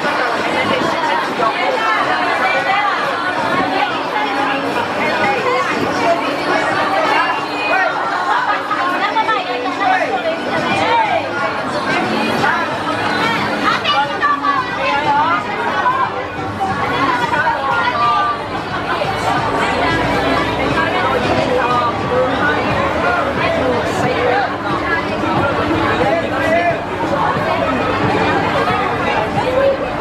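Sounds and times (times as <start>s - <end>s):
crowd babble: 0.0s - 30.0s
people talking: 0.0s - 30.0s.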